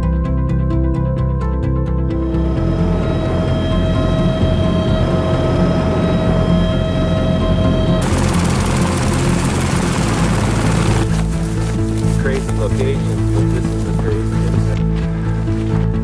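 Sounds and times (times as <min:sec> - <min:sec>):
background music sustained tones: 0:00.0 - 0:16.0
helicopter rotor: 0:02.6 - 0:11.2.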